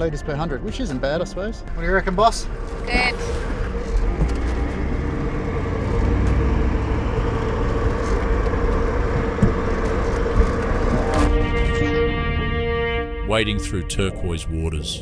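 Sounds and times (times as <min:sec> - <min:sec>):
vehicle engine and tyres rumbling: 0:00.0 - 0:11.6
background music: 0:00.0 - 0:15.0.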